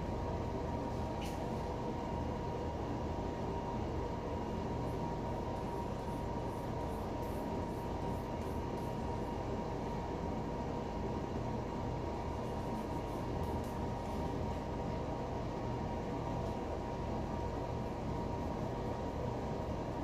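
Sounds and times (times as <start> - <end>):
thin steady whine: 0.0 - 20.0.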